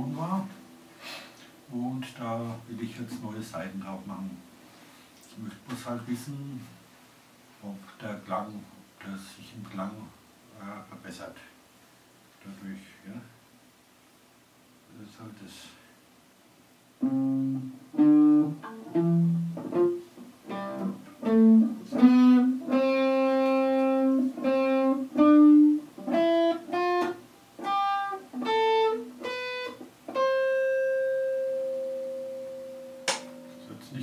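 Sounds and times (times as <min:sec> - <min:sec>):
electric guitar single notes: 0:17.0 - 0:34.0.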